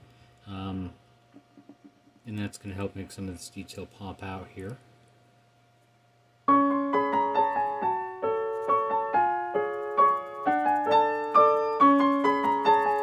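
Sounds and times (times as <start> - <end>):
piano music: 6.5 - 13.0.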